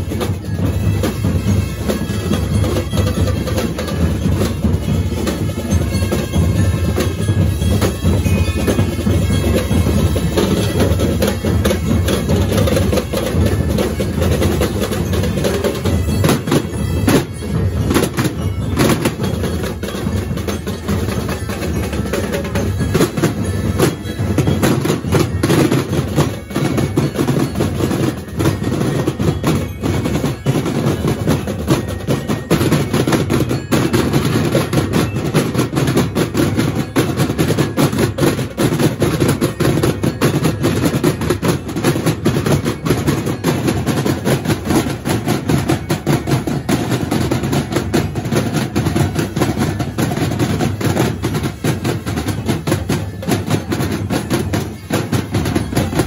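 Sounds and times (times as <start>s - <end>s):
drum corps playing fast rhythm: 0.0s - 56.0s.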